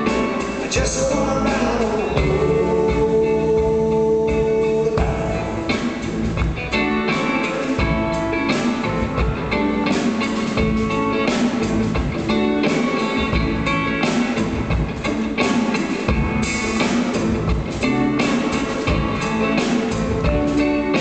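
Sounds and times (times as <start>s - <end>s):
drum kit steady beat: 0.0s - 21.0s
electric guitar playing: 0.0s - 21.0s.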